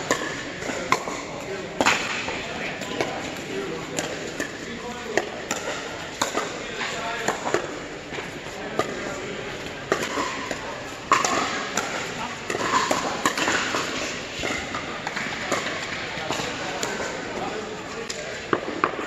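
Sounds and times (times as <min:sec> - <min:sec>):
voices in large hall: 0:00.0 - 0:19.0.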